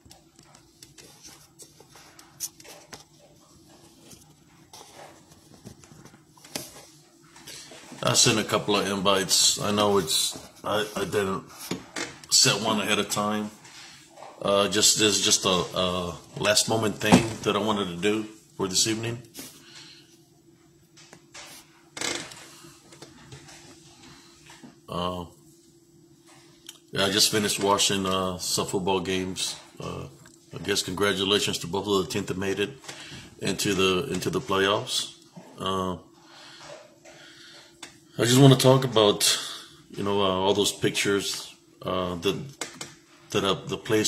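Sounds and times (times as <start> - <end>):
faint room hum: 0.0 - 44.0.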